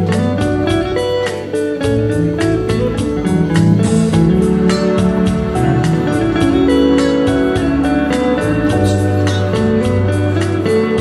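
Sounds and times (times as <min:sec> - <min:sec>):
backing track with steady beat: 0:00.0 - 0:11.0
electric guitar: 0:00.0 - 0:11.0.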